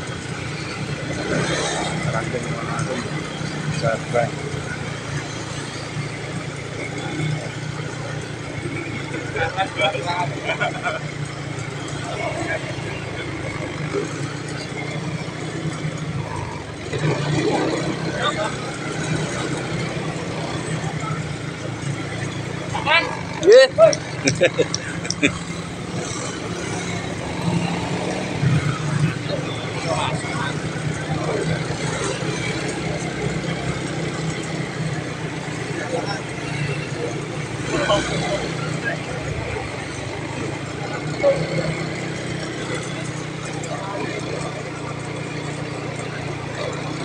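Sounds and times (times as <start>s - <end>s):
crowd talking: 0.0s - 47.0s
faint voices: 0.0s - 47.0s
motor scooter engine running: 0.0s - 47.0s
street noise: 0.0s - 47.0s.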